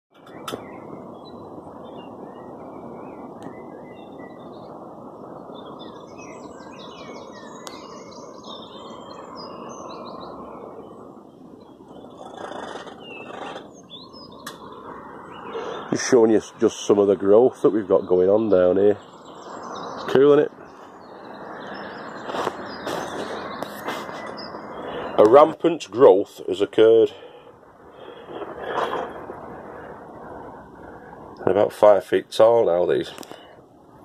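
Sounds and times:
small birds chirping: 0.1s - 34.0s
steady background noise: 0.1s - 34.0s.

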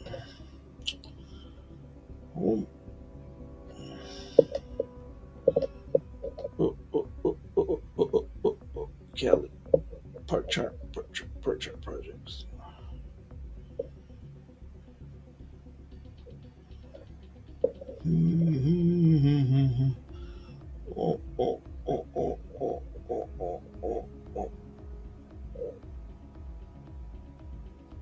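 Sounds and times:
faint low hum: 0.0s - 28.0s
man humming: 2.4s - 2.7s, 4.1s - 9.4s, 18.0s - 24.8s, 25.5s - 25.9s.

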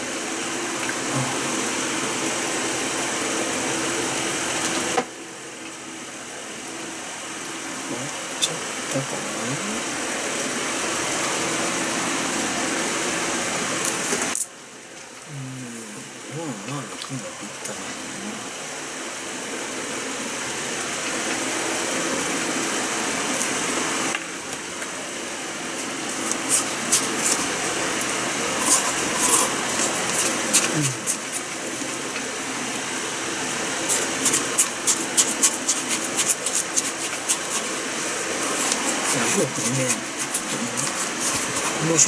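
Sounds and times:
steady background whir: 0.0s - 42.0s
spoon scraping in plastic cup: 26.1s - 31.4s, 33.9s - 42.0s.

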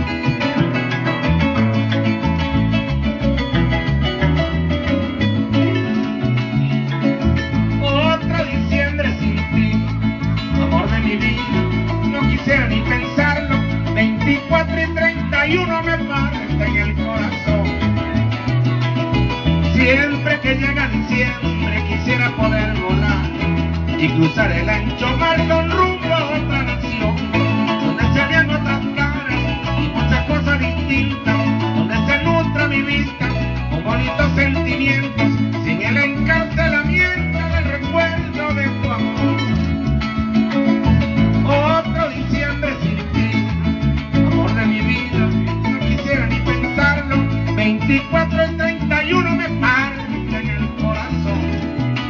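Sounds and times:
pulsing bass line: 0.0s - 52.0s.

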